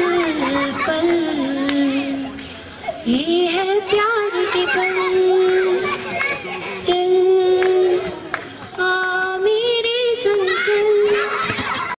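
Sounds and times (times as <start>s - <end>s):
woman singing: 0.0s - 2.4s, 3.0s - 5.9s, 6.8s - 11.2s.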